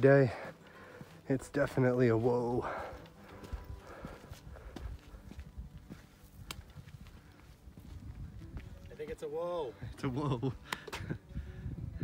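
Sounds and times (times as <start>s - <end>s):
footsteps on rock: 0.8s - 9.2s.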